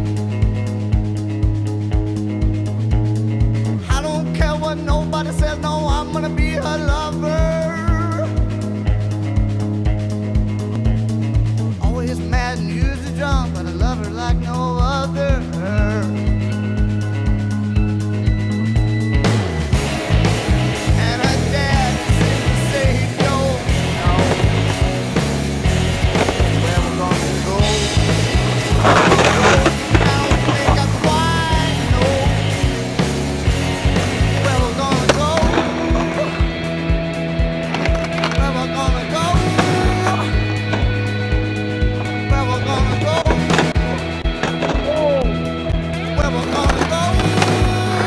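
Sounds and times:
rock music: 0:00.0 - 0:48.0
skateboard rolling on concrete: 0:18.6 - 0:48.0
skateboard clacks: 0:19.8 - 0:48.0.

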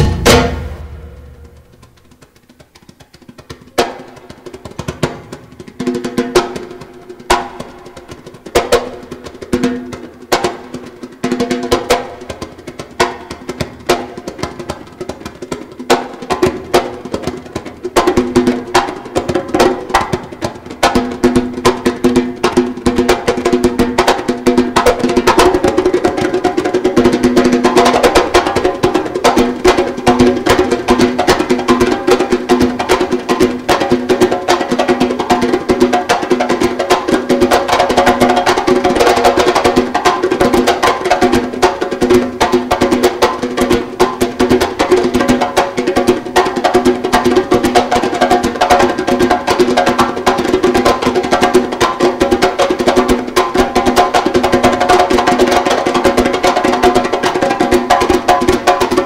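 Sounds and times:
hand drum solo: 0:00.0 - 0:59.0.

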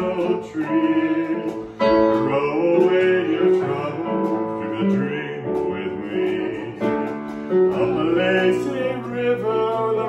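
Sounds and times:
man singing: 0:00.0 - 0:10.0
ukulele: 0:00.0 - 0:10.0.

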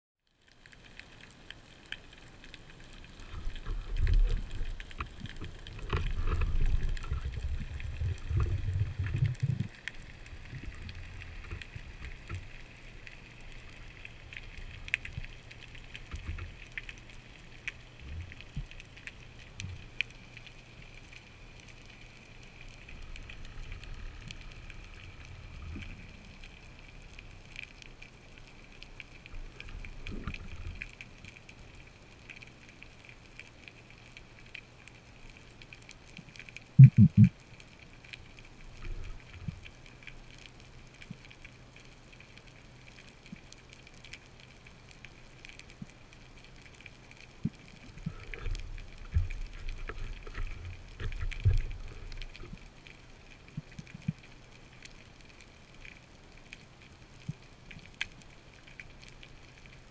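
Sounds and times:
faint clicks and crackles: 0:00.2 - 0:59.9
low rumble of moving water: 0:00.2 - 0:59.9.

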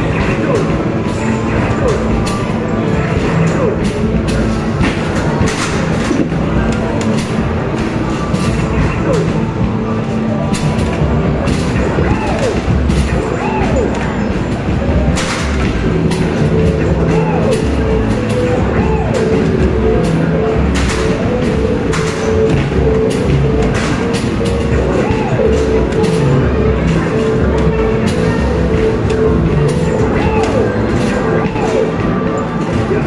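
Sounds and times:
arcade game music and tones: 0:00.0 - 0:33.0.

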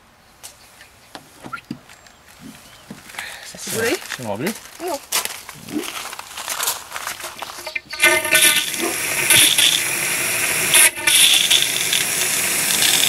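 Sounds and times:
water rushing from hose: 0:07.2 - 0:13.0.

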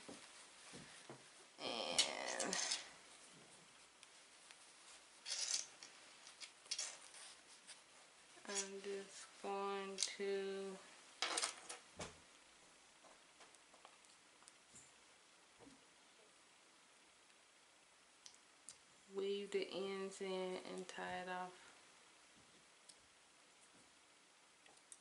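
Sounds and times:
hands working yarn: 0:00.0 - 0:10.7.

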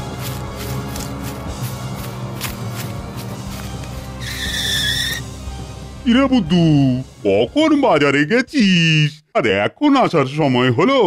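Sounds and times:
background music: 0:00.0 - 0:11.0
cartoon skid screech: 0:04.2 - 0:05.2.

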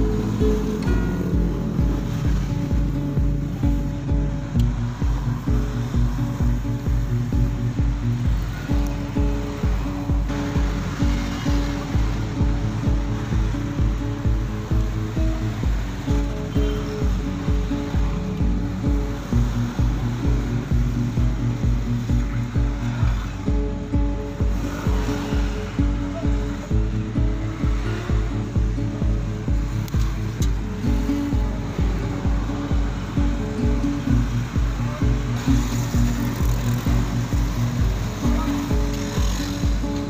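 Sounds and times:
kick drum beat: 0:00.0 - 0:11.2, 0:11.9 - 0:35.3, 0:36.0 - 0:38.9
sustained chords: 0:00.0 - 0:40.0.

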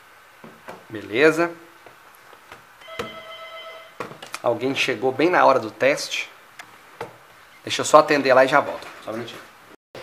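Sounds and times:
electronic doorbell buzzer: 0:02.8 - 0:04.0.

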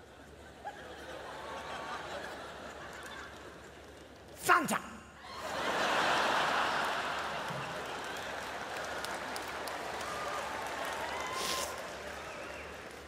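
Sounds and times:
audience applause: 0:05.5 - 0:13.0.

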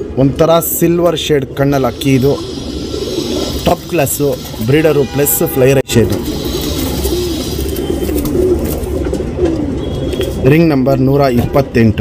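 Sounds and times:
pigeons cooing: 0:01.6 - 0:05.0, 0:06.1 - 0:10.4.

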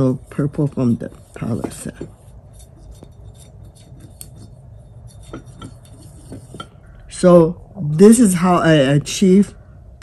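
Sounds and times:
paintbrush scraping ceramic palette: 0:00.0 - 0:07.3
faint low hum: 0:00.0 - 0:10.0.

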